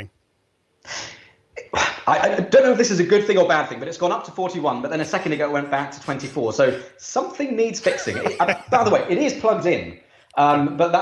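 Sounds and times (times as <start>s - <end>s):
man speaking: 1.6s - 11.0s.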